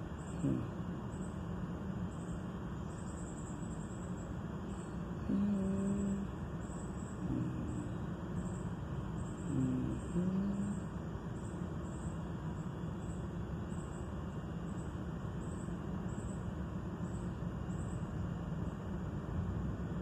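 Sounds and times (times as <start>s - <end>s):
low background rumble: 0.0s - 20.0s.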